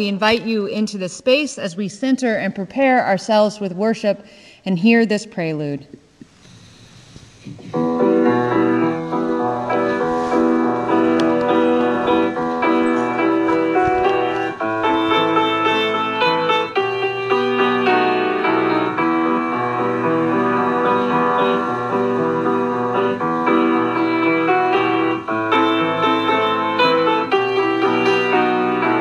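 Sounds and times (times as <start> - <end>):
keyboard playing slow chords: 7.8 - 29.0.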